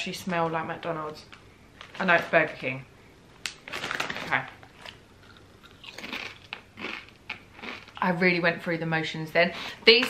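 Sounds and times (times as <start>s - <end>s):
chips being crunched and chewed: 3.5s - 8.1s.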